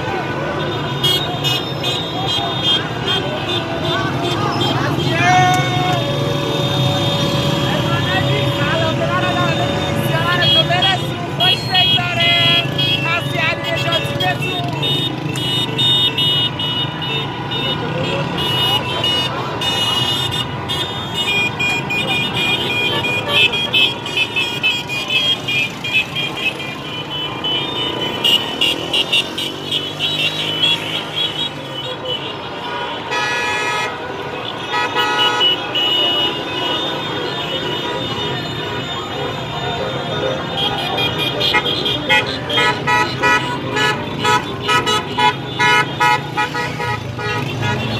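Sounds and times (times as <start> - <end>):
busy traffic: 0.0 - 47.9
car horns honking: 0.0 - 47.9
people shouting: 3.2 - 15.3.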